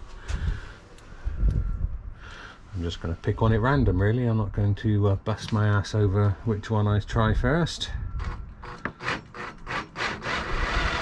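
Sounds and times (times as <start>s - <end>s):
cordless drill driving screw: 8.6s - 11.0s.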